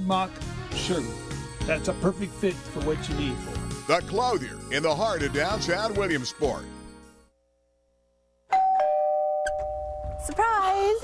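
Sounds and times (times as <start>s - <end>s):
two-tone doorbell chime: 8.5s - 10.4s.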